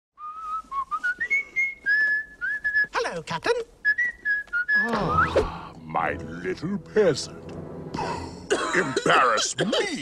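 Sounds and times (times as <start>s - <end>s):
person whistling a tune: 0.2s - 2.9s, 3.8s - 5.4s.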